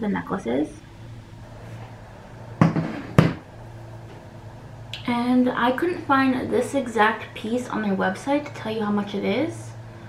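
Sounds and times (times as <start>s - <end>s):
steady low hum: 0.0s - 10.0s
sharp knocks: 2.6s - 3.4s.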